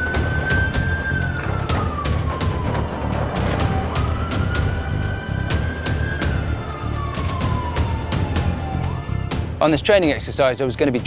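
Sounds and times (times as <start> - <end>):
siren wailing: 0.0 - 9.4
background music with steady beat: 0.0 - 11.0.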